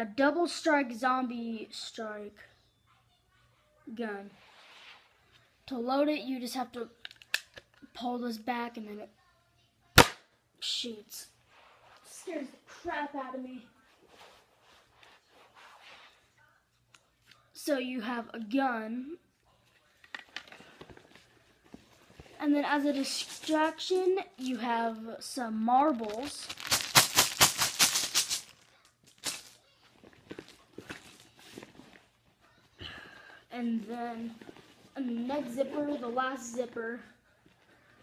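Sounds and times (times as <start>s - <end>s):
marbles rattling: 26.0s - 29.6s.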